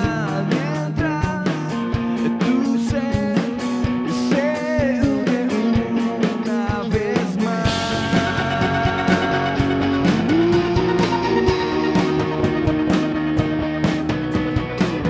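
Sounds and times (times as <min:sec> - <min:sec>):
male lead vocal: 0:00.0 - 0:12.9
bass guitar: 0:00.0 - 0:15.0
drum kit: 0:00.0 - 0:15.0
electric guitar: 0:00.0 - 0:15.0.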